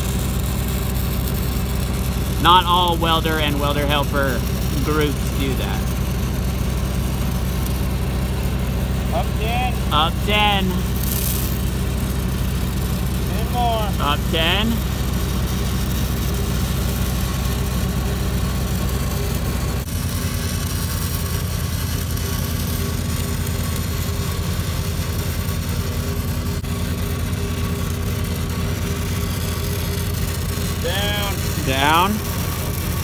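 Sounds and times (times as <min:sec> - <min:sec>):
welding arc hiss and crackle: 0:00.0 - 0:33.0
welding machine engine running: 0:00.0 - 0:33.0.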